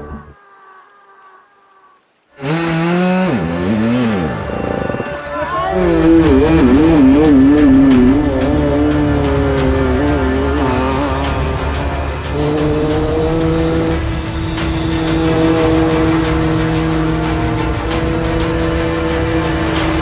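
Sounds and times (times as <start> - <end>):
dirt bike engine revving: 0.0 - 0.4, 2.3 - 5.2, 5.8 - 20.0.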